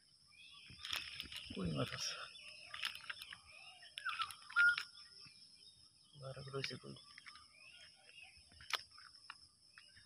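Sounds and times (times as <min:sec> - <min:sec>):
bird chirps: 0:00.0 - 0:10.0.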